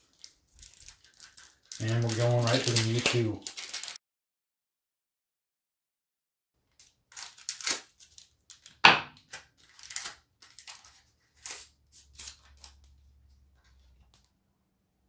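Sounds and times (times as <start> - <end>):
foil wrapper crinkling: 0.0 - 4.0, 6.7 - 14.3
foil wrapper tearing: 0.0 - 4.0, 6.7 - 13.0.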